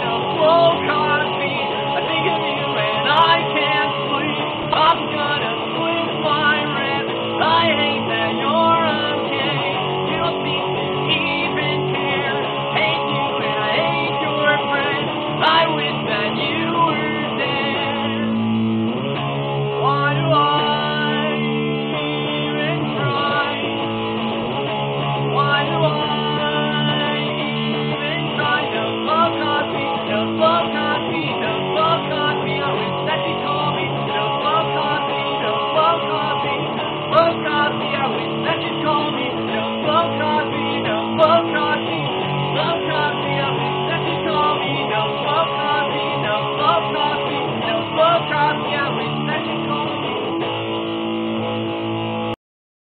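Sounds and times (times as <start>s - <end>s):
electric guitar strumming chords: 0.0s - 52.4s.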